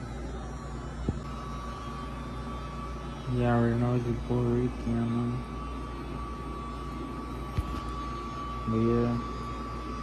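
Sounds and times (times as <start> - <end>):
low background hum: 0.0 - 10.0
thin high tone: 0.0 - 10.0.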